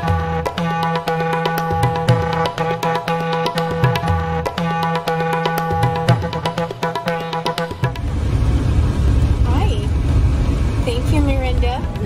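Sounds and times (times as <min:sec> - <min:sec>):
car road noise rumble: 0:07.9 - 0:12.0
woman's voice: 0:09.4 - 0:09.9, 0:10.8 - 0:12.0.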